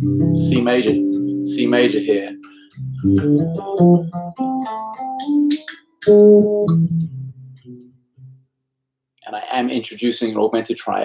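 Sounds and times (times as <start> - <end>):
electric bass playing: 0.0 - 8.4.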